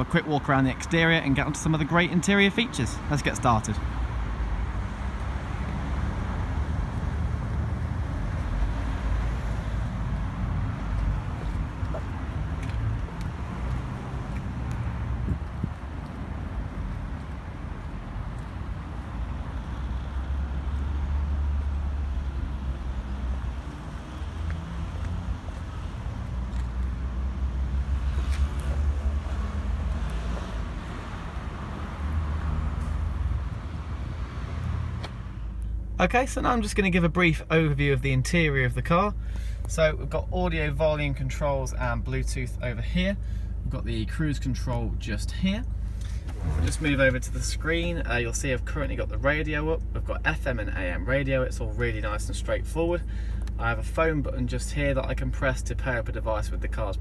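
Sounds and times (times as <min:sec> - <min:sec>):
road traffic: 0:00.0 - 0:57.0
wind buffeting the microphone: 0:14.4 - 0:17.3.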